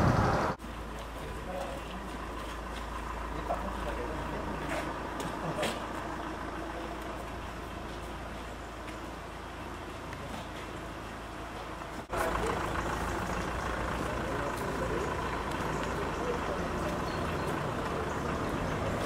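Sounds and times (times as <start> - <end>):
vehicle engine idling: 0.0 - 19.0
faint voices: 12.0 - 19.0.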